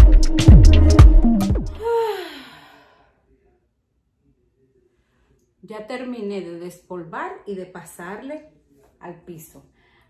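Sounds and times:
woman sighing: 0:01.8 - 0:03.0.

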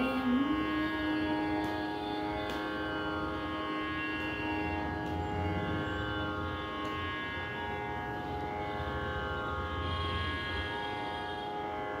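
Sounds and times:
electronic tanpura drone: 0:00.0 - 0:12.0.

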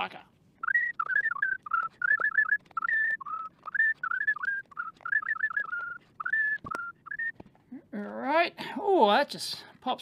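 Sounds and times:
man whistling a tune: 0:00.6 - 0:07.4.

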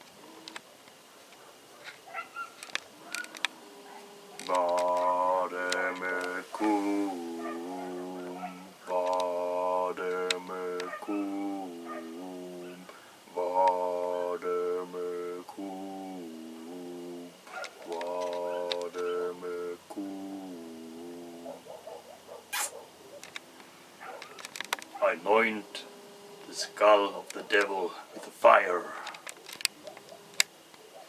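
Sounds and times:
rough throaty noises: 0:00.0 - 0:31.0
deep voice chanting drone: 0:02.9 - 0:21.8, 0:25.0 - 0:29.2
sharp breath hiss: 0:12.6 - 0:13.3, 0:22.5 - 0:22.8.

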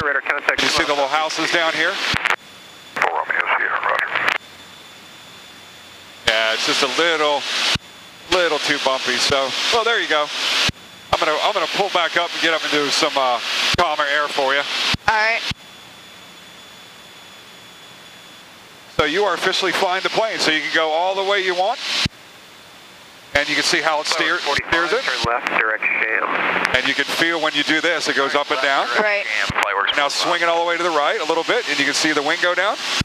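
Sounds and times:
voice over radio intercom: 0:00.0 - 0:02.1, 0:03.0 - 0:04.4, 0:23.4 - 0:32.2
high whine: 0:00.0 - 0:33.0
aircraft engine and airflow hiss: 0:00.3 - 0:33.0.

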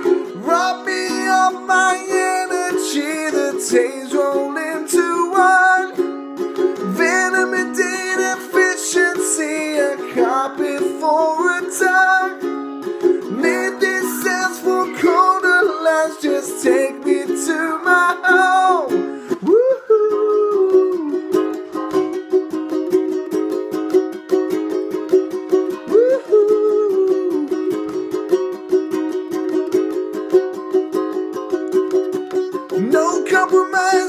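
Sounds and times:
ukulele strumming: 0:00.0 - 0:34.0
wordless melody line: 0:00.0 - 0:34.0.

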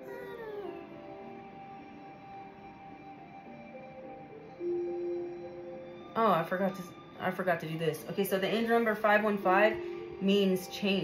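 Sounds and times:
ambient singing bowl tones: 0:00.0 - 0:11.0.

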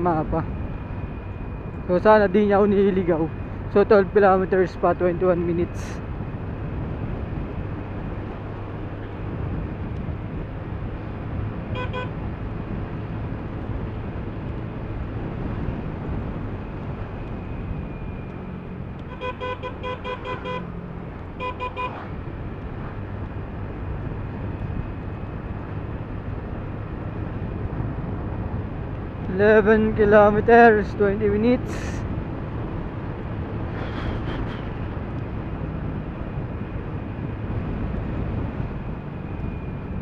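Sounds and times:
scooter engine and wind rumble: 0:00.0 - 0:40.0
scooter horn beeps: 0:11.8 - 0:12.1, 0:19.1 - 0:20.6, 0:21.4 - 0:22.0.

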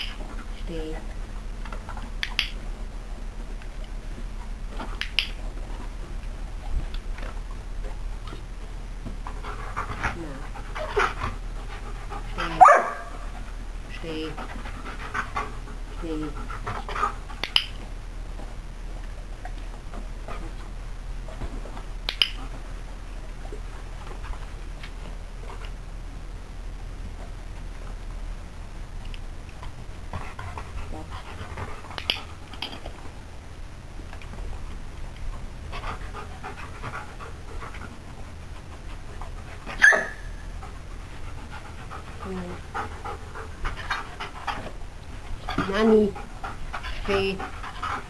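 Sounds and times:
dog panting: 0:09.2 - 0:17.6, 0:30.1 - 0:32.6, 0:35.6 - 0:48.0.

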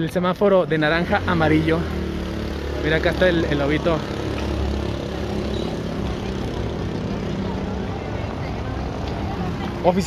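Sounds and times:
voices of people on street: 0:00.0 - 0:10.0.

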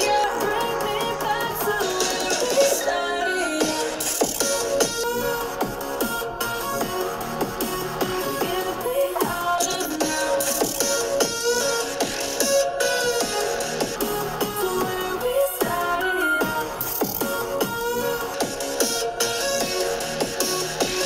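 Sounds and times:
electronic dance music from laptop speakers: 0:00.0 - 0:21.0.

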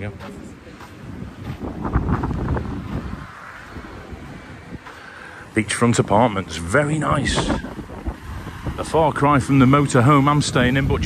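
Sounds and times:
faint traffic: 0:00.0 - 0:11.0
wind on microphone: 0:00.0 - 0:11.0.

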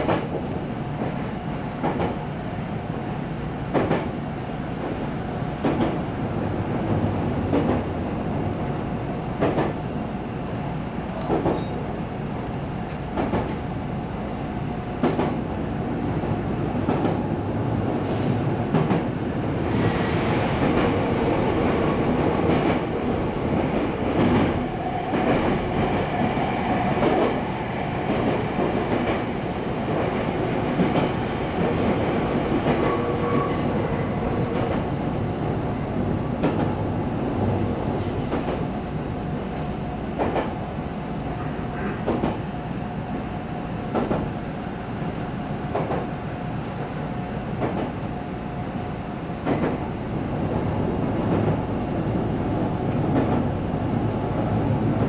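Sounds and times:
electric train rolling rumble: 0:00.0 - 0:55.0.

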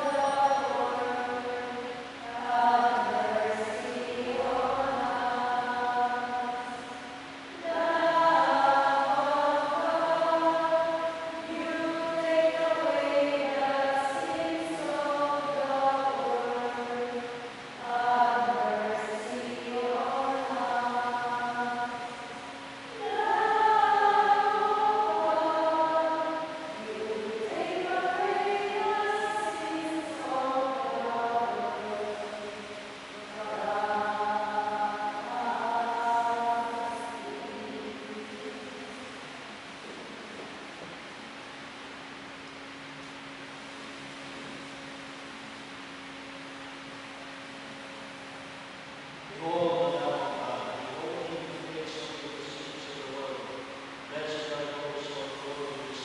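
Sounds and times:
choir singing a hymn: 0:00.0 - 0:40.5.

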